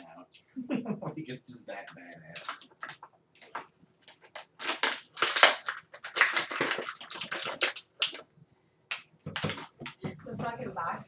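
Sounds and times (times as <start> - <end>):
plastic packaging crinkling: 2.3 - 8.2, 8.9 - 10.0.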